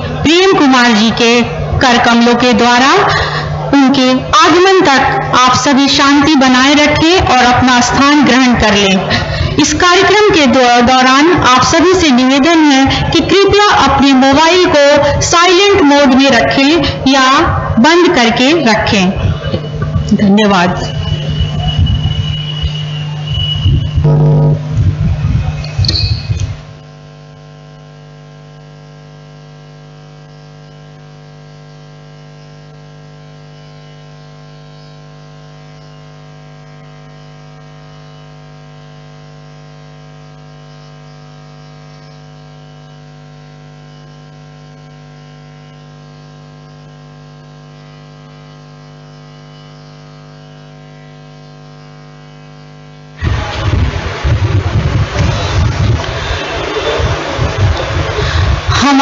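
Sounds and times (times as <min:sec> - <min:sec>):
electrical mains hum: 0:00.0 - 0:59.0
loud full sound: 0:53.2 - 0:59.0.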